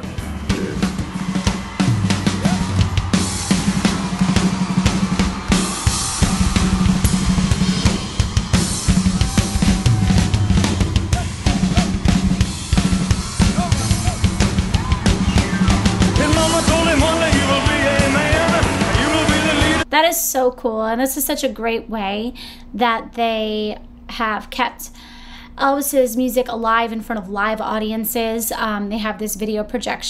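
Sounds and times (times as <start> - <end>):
drum kit hits: 0.0 - 19.8
live rock band: 0.0 - 19.8.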